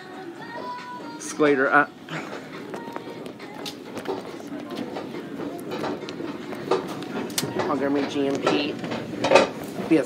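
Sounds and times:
faint store music: 0.0 - 10.0
murmur of shoppers: 1.6 - 10.0
sneaker footsteps on tiled floor: 2.3 - 10.0.

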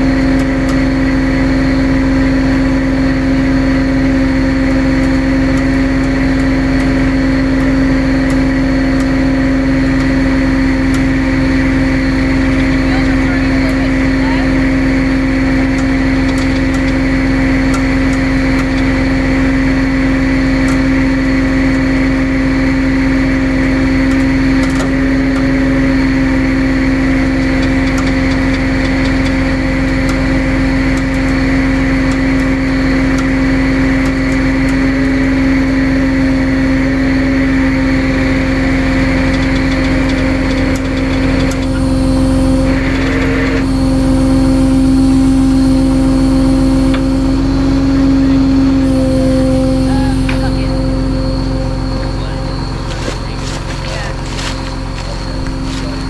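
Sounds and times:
tow truck engine humming: 0.0 - 56.0.

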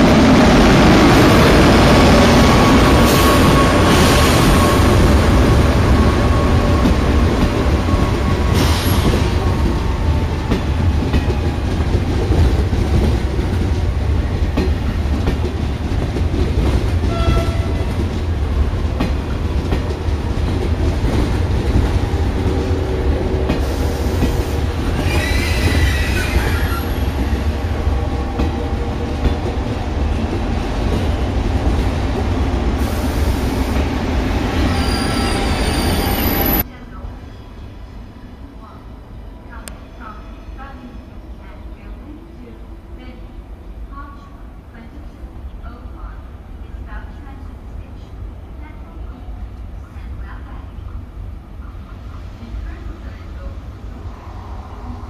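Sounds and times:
train wheels rumbling on rail: 0.0 - 36.7
wavering wheel squeal: 25.0 - 27.1.

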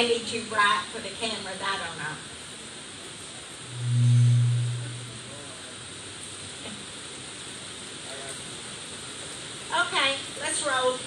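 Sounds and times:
heavy rain on a metal roof: 0.0 - 3.7, 5.2 - 11.0
low smooth hum: 3.6 - 5.7.

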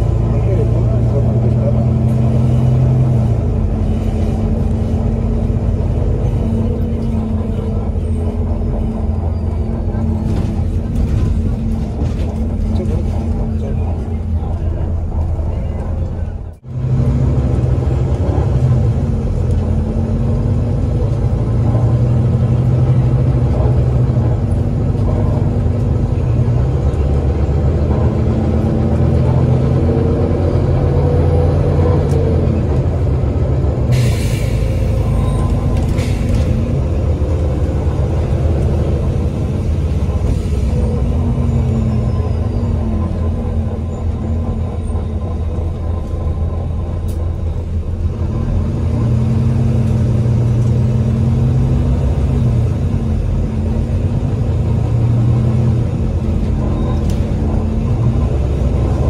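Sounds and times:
bus diesel engine running: 0.0 - 59.0.

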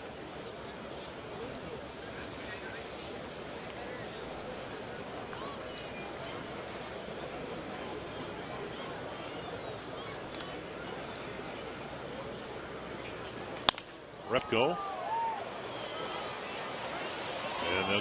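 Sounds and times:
crowd murmuring and chatting: 0.0 - 18.0
wooden bat hitting a ball: 13.6 - 14.0.

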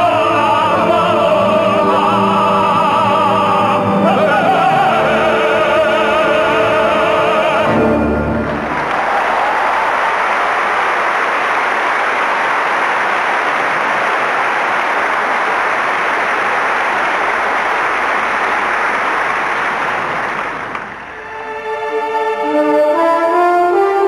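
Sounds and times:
audience applauding: 7.6 - 21.6.

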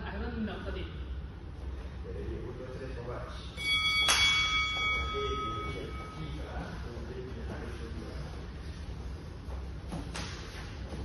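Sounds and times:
timer bell ringing: 3.5 - 6.8.

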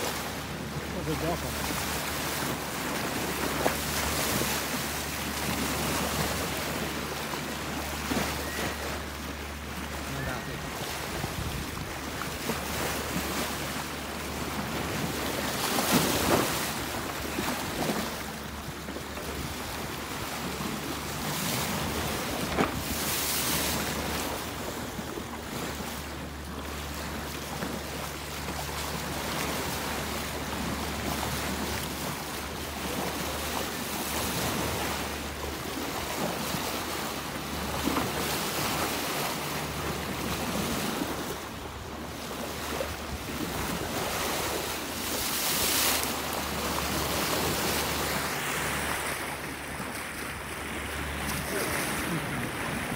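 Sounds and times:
sea water rushing and splashing: 0.0 - 52.9
wind buffeting microphone: 11.0 - 13.3.

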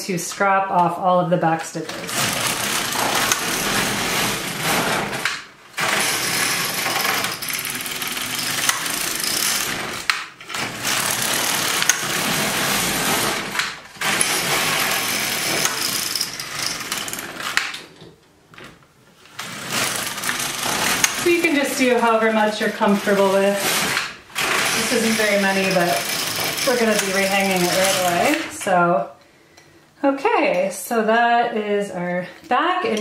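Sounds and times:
knitting machine carriage rattling: 1.6 - 28.8.

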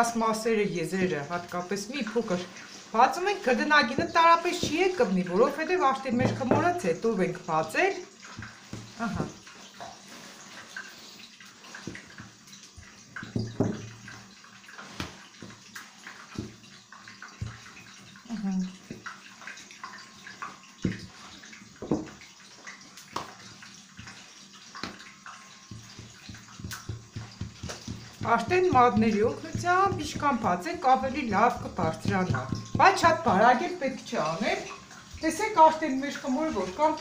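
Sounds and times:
rolling pin rolling dough: 3.3 - 5.4, 24.8 - 33.6.

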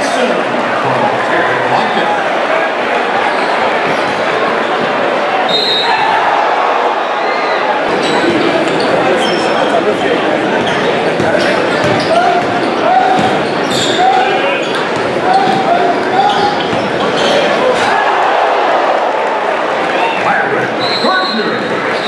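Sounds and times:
crowd voices: 0.0 - 22.0.

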